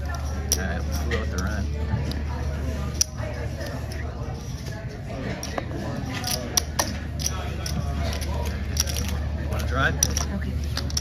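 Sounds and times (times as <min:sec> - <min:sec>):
murmur of background voices: 0:00.0 - 0:11.0
casino chips clicking: 0:06.2 - 0:11.0.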